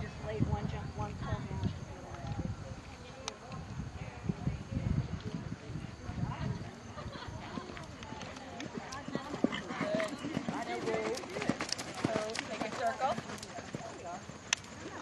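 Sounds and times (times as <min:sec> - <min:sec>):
people talking: 0:00.0 - 0:15.0
horse hoofbeats on sand: 0:07.6 - 0:14.5.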